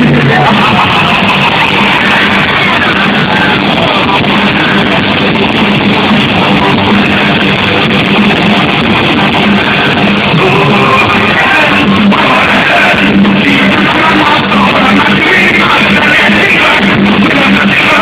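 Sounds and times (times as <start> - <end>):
distorted electric guitars: 0.0 - 18.0
drums: 0.0 - 18.0
heavy metal band playing live: 0.0 - 18.0.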